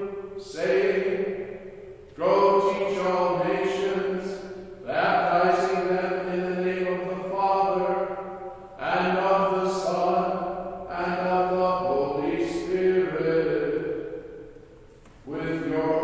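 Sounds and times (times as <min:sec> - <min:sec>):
man chanting: 0:00.0 - 0:14.1, 0:15.2 - 0:16.0.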